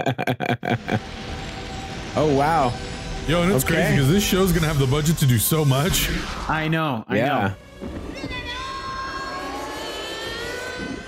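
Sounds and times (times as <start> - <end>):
low rumble: 0.7 - 6.6
high whining tone: 0.8 - 6.7, 7.6 - 11.0.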